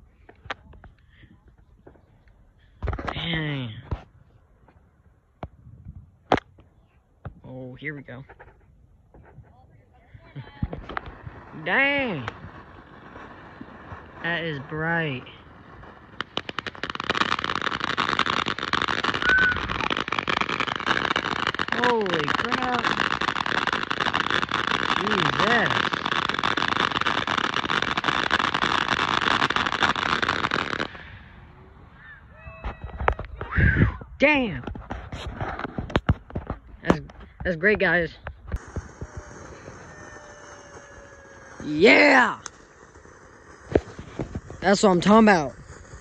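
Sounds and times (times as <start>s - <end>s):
firework pops: 2.8s - 4.1s, 6.2s - 7.4s, 10.5s - 11.3s, 11.9s - 15.2s, 32.6s - 37.6s, 38.2s - 41.6s, 42.4s - 44.8s
firework crackling: 8.1s - 33.6s, 34.2s - 46.0s
firework whistle: 19.0s - 20.0s, 38.5s - 46.0s
sharp pops: 38.2s - 39.8s, 42.2s - 45.4s.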